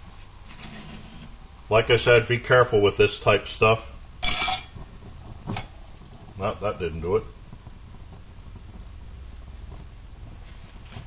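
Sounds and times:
metal lid clanking on stove: 4.2 - 4.8.

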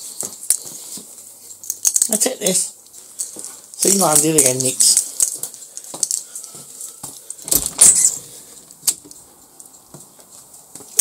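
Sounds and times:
door latch jangling and clicking: 7.4 - 8.2.

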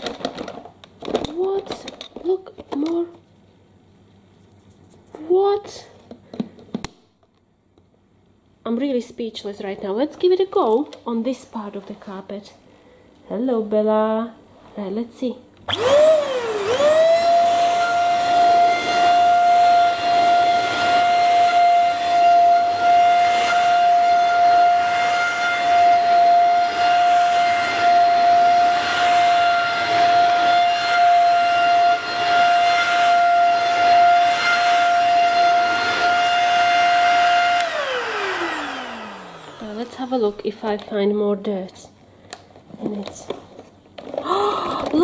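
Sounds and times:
handheld vacuum cleaner motor whine: 15.7 - 40.4
vacuum brush on carpet: 15.7 - 40.4.

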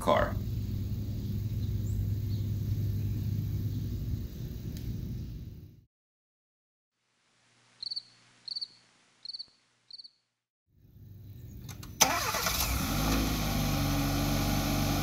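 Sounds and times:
car engine starting and idling: 11.7 - 15.0.

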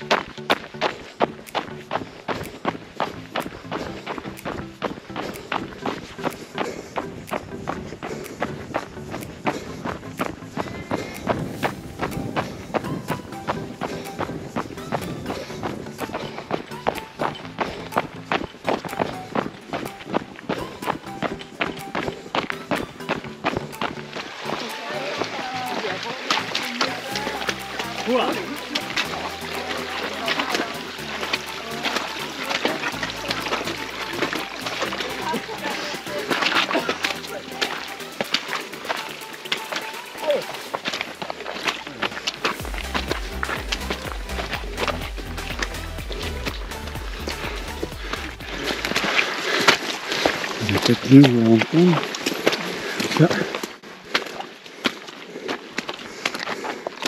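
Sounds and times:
upbeat background music: 0.0 - 52.1
quick rhythmic footsteps: 0.0 - 57.0.

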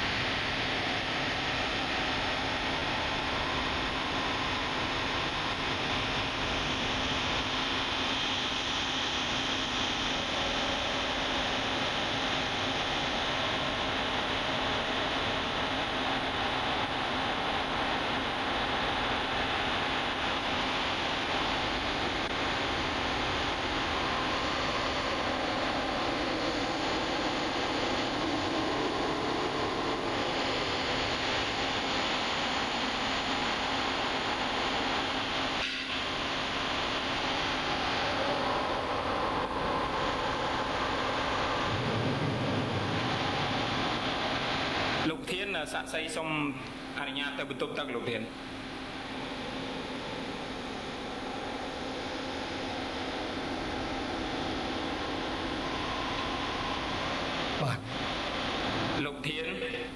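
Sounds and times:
steady hiss: 0.0 - 59.9.

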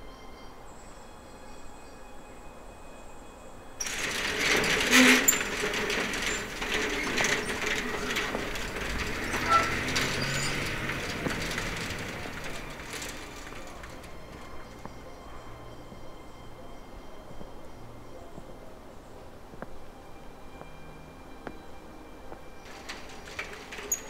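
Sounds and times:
metal roller shutter rattling: 3.8 - 14.9, 22.6 - 24.0.

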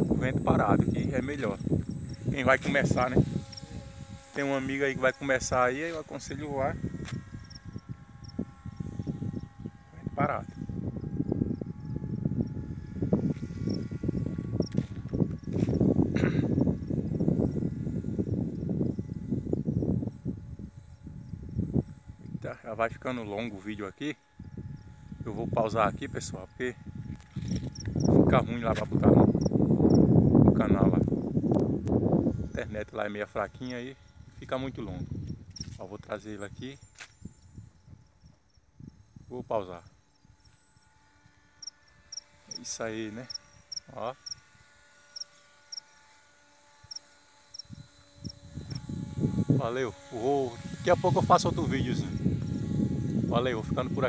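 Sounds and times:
insects chirping: 0.0 - 22.4, 23.0 - 25.4, 26.0 - 50.8
wind buffeting microphone: 0.0 - 23.6, 24.2 - 45.0, 46.8 - 54.0.

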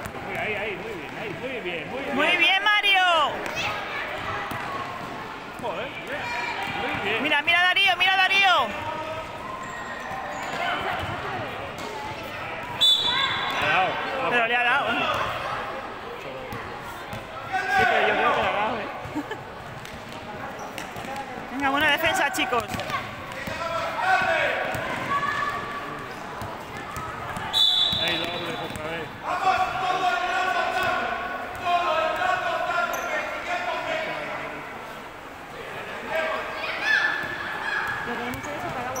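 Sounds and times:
basketball bouncing on hard court: 20.8 - 23.6, 26.4 - 28.9.

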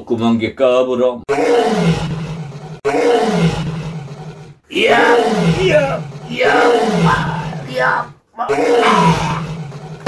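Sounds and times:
man imitating lion roar: 2.8 - 3.8, 4.7 - 9.8.

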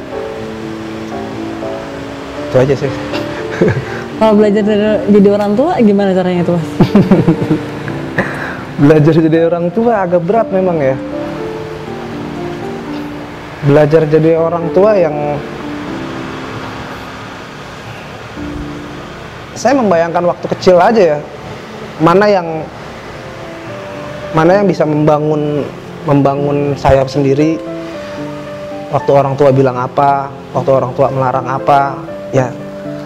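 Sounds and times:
soft background music: 0.0 - 33.0.

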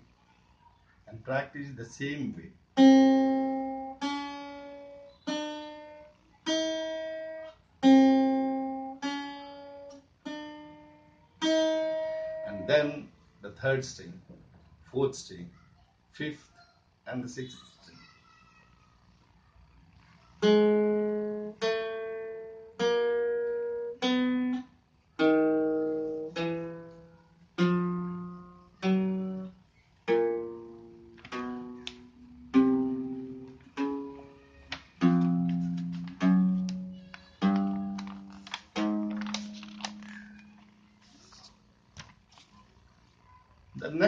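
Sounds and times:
acoustic guitar single notes: 2.8 - 13.1, 20.4 - 41.1.

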